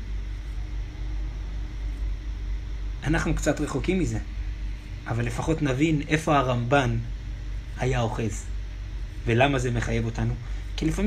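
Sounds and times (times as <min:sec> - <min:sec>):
low-pitched hum: 0:00.0 - 0:11.0.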